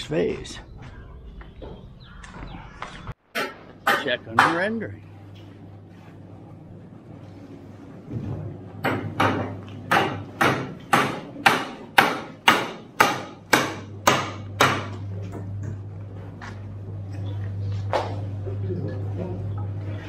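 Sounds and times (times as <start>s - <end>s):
hammer blows ringing: 8.8s - 15.0s.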